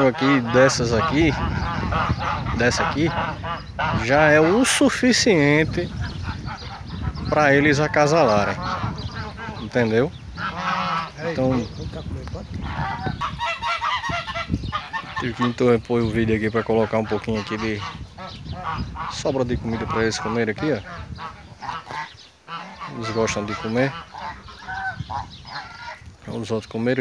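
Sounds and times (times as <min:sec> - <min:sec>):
geese honking: 0:00.0 - 0:26.2.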